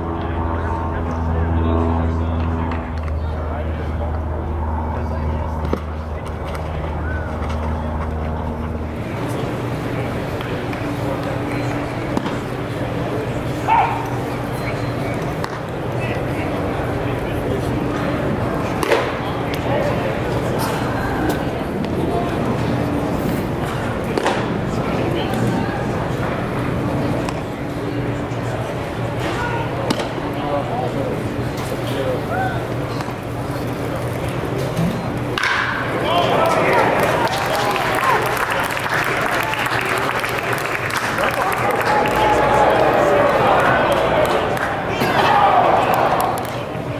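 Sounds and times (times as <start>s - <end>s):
crowd cheering: 5.0s - 22.8s, 35.4s - 46.9s
bat cracking a ball: 18.8s - 19.2s, 24.1s - 24.6s, 29.9s - 30.2s, 35.4s - 36.6s.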